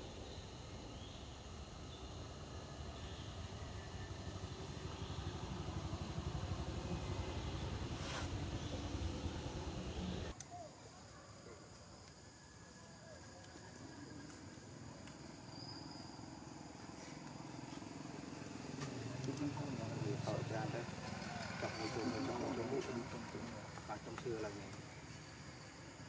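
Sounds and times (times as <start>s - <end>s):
indistinct voices talking: 10.4s - 26.0s.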